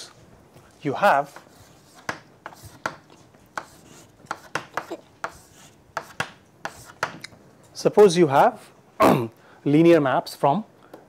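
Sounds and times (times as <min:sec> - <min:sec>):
chalk tapping and scratching: 0:01.0 - 0:07.3.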